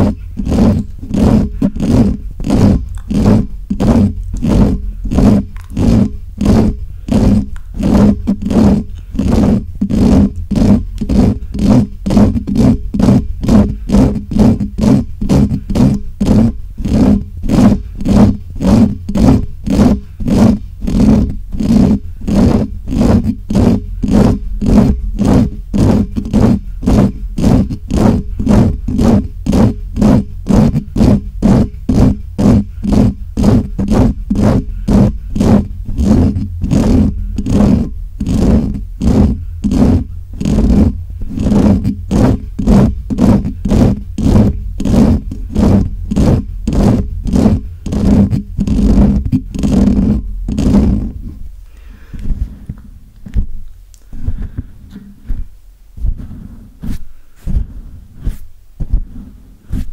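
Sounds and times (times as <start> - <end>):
fingers scratching microphone grille: 0.0 - 59.9
low rumble of mic handling: 0.0 - 59.9.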